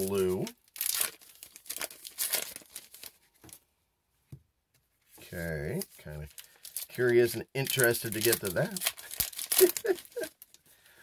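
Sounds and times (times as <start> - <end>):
wrapper crinkling: 0.0 - 3.6, 5.7 - 10.6.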